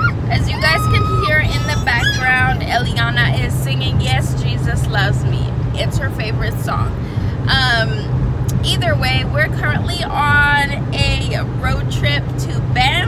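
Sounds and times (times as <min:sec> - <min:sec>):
car road and engine drone: 0:00.0 - 0:13.0
woman talking: 0:00.0 - 0:13.0.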